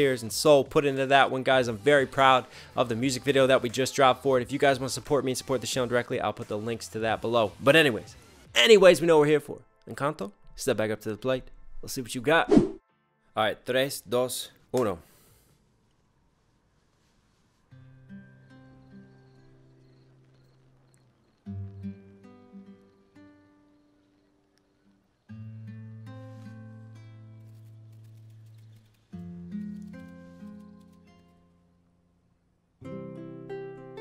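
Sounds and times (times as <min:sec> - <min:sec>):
plucked acoustic string chords: 0:32.8 - 0:34.0.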